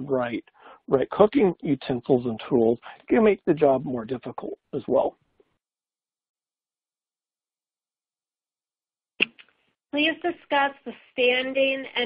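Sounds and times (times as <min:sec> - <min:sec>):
person speaking: 0:00.0 - 0:05.2.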